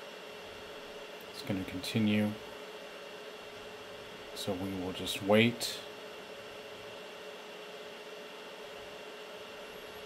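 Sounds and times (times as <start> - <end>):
cooling fans whirring: 0.0 - 10.0
faint steady hum: 0.0 - 10.0.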